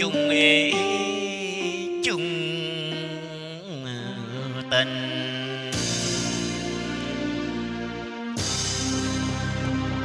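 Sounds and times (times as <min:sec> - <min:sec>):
person singing held vocal: 0:00.0 - 0:06.6
karaoke backing music: 0:00.0 - 0:10.0.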